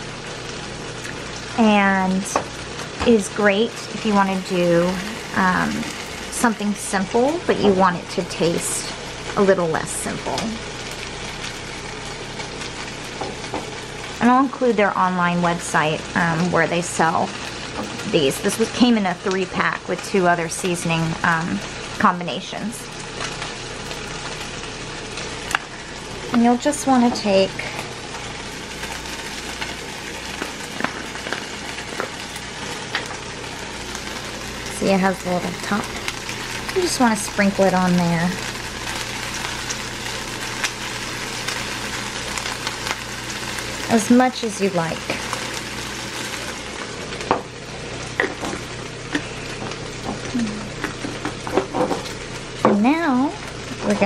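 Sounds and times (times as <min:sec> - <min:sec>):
food sizzling in a pan: 0:00.0 - 0:54.0.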